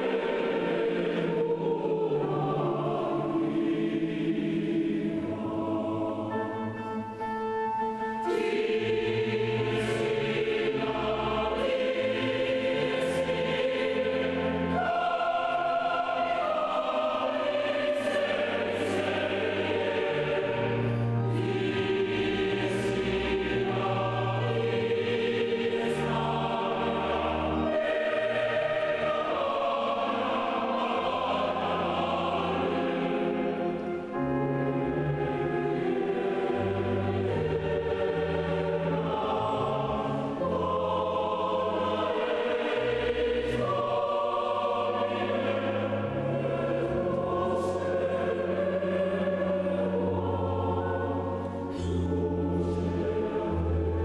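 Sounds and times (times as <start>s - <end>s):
mixed choir singing: 0.0s - 54.0s.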